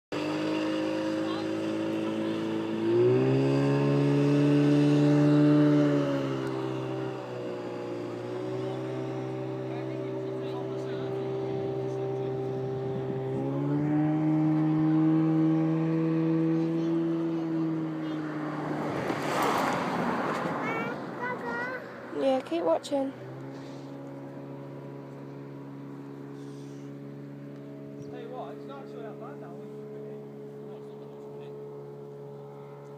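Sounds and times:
outboard motor revving: 0.1 - 32.9.

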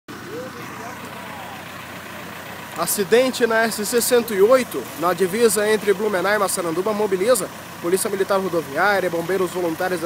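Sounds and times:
distant indistinct voices: 0.1 - 10.0
outdoor background noise: 0.1 - 10.0.

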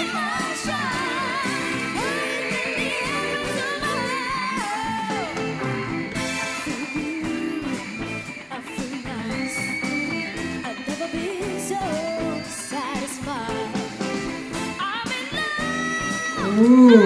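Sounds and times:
girl singing pop song: 0.0 - 5.8, 6.5 - 17.0
band accompaniment: 0.0 - 15.6.

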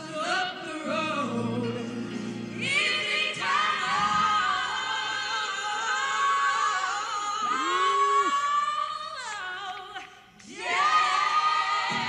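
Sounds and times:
female vocal group singing gospel: 0.0 - 12.0.

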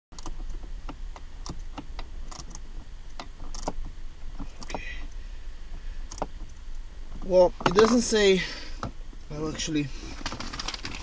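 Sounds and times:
steady low rumble: 0.1 - 11.0
small clicks and taps of parts: 0.2 - 5.2.

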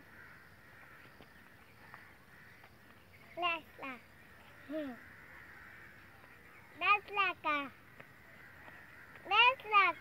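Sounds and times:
crow cawing: 0.0 - 2.8, 3.8 - 10.0.

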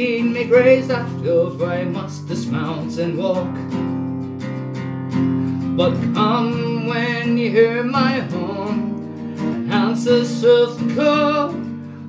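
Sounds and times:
person singing: 0.0 - 3.8, 5.6 - 12.0
acoustic guitar strumming: 0.0 - 12.0.

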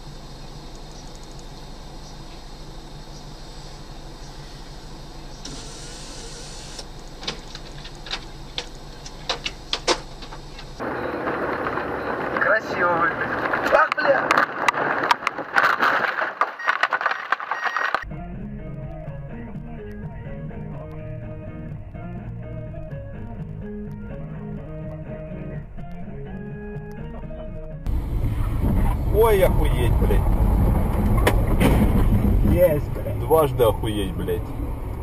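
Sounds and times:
low vehicle rumble: 0.0 - 35.0
rough noise with sharp knocks: 30.8 - 32.8.

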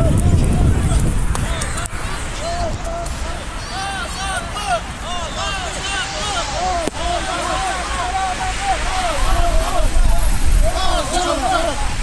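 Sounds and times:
people shouting: 0.0 - 12.0.

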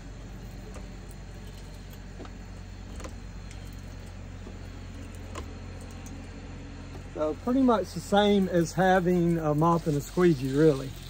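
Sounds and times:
light clicks and taps of pole: 0.6 - 7.1
pole brush scrubbing window glass: 7.2 - 11.0.

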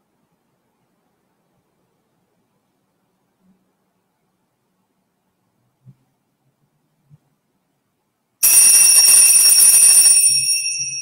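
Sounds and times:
hand-held bells ringing: 8.4 - 11.0.

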